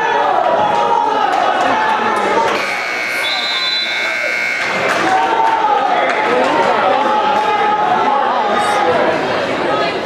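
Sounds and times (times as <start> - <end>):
crowd shouting: 0.0 - 10.0
scoreboard buzzer: 2.5 - 5.0.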